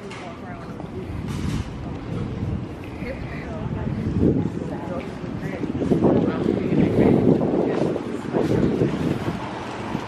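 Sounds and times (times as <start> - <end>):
wind buffeting microphone: 0.6 - 10.0.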